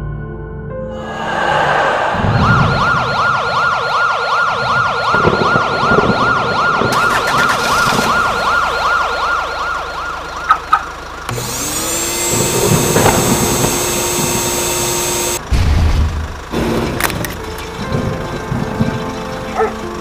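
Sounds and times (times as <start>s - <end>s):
rising tone into held drone: 0.8s - 6.8s, 11.5s - 15.4s
warbling siren-like tone: 1.0s - 15.4s.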